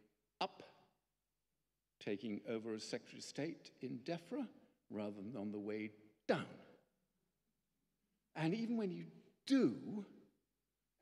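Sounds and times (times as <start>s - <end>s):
man speaking: 2.0s - 6.9s, 8.3s - 10.2s.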